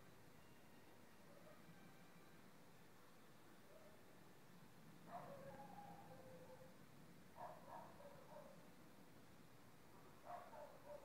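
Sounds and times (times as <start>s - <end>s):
quiet hiss: 0.0s - 11.0s
distant dog barking: 5.1s - 6.8s, 7.4s - 8.6s, 10.2s - 11.0s.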